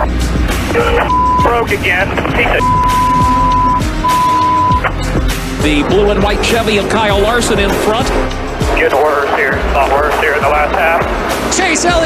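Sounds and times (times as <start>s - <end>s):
music: 0.0s - 12.0s
race car noise: 0.0s - 12.0s
censor bleeps: 0.8s - 1.7s, 2.6s - 4.9s.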